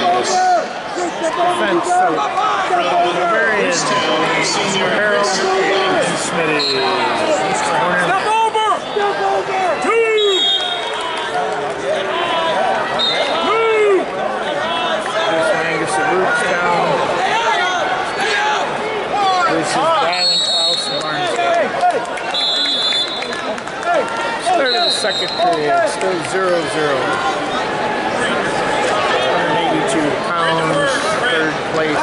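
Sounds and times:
crowd shouting: 0.0 - 32.0
referee whistle blasts: 10.1 - 11.0, 13.0 - 13.4, 20.1 - 21.0, 22.3 - 23.3, 24.6 - 25.6.

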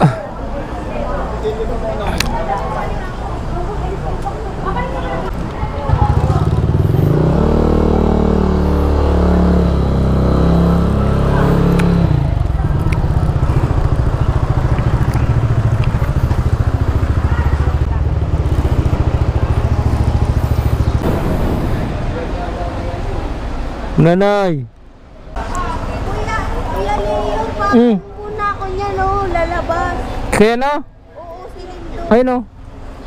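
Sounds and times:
motorcycle engine rumbling: 0.0 - 24.0.

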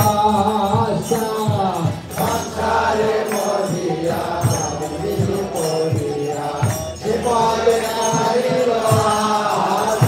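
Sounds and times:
drum striking: 0.0 - 10.0
hand cymbals ringing: 0.0 - 10.0
group chanting to music: 1.8 - 10.0.

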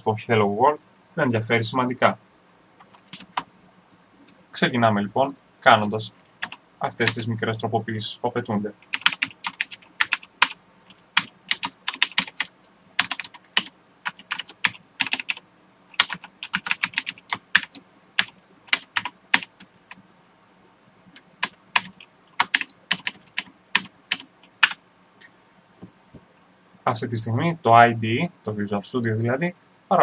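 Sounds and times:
typing on a computer keyboard: 2.8 - 3.5, 6.4 - 7.2, 8.8 - 20.0, 21.1 - 24.8.

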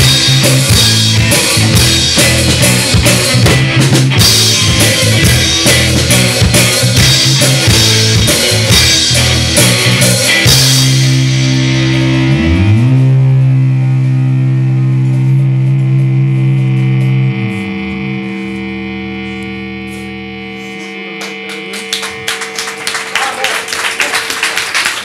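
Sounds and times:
distorted electric guitar chord: 0.0 - 24.5
audience clapping: 21.1 - 25.0.

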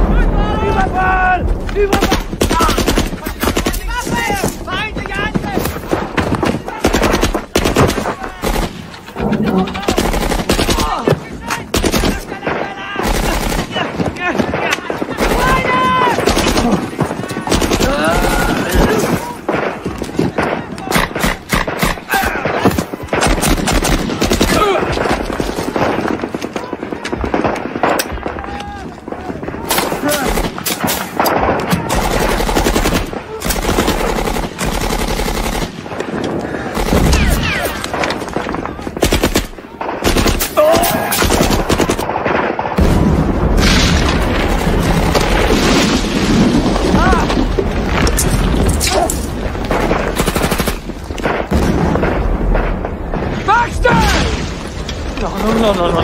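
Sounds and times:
automatic gunfire bursts: 29.7 - 35.9.

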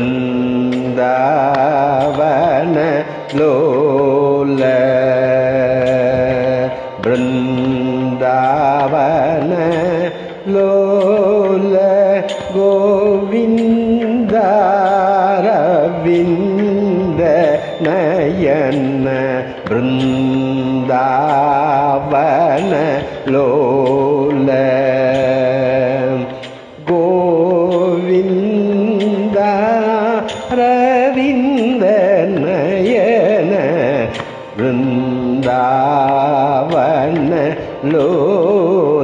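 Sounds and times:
man singing ornamented notes: 0.0 - 39.0.

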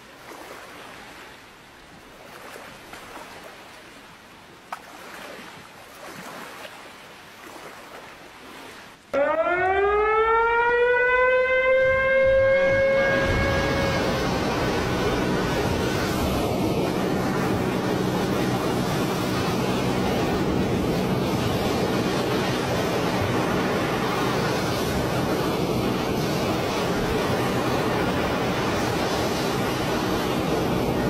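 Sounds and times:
water rushing from dam spillways: 0.0 - 9.0, 12.7 - 31.0
warning siren winding up: 9.2 - 16.2.

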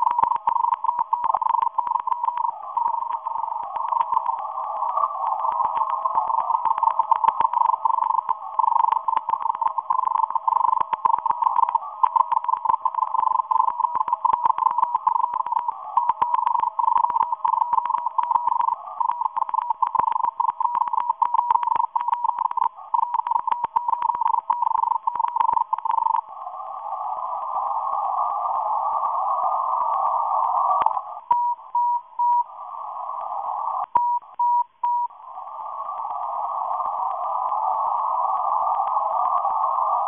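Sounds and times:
faint clicks: 0.0 - 26.3, 28.5 - 31.4, 35.7 - 40.0.

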